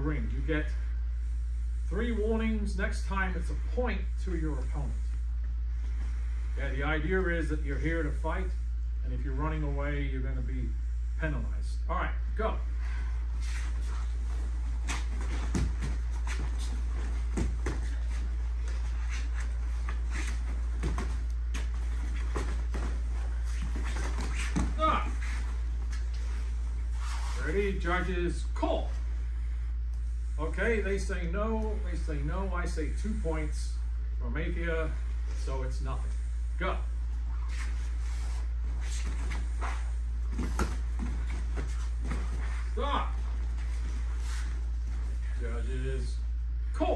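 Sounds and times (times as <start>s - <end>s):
steady low hum: 0.0s - 46.9s
feet scuffing and stamping on mat: 13.4s - 27.4s, 37.4s - 42.8s
short grunts: 24.6s - 25.3s.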